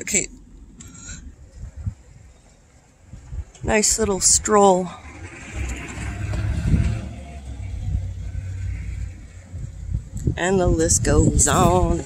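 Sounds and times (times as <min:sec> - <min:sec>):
car driving by: 0:04.4 - 0:10.1.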